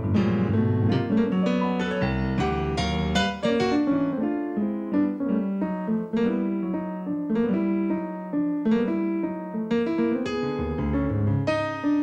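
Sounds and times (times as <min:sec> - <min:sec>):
solo jazz piano: 0:00.0 - 0:12.0.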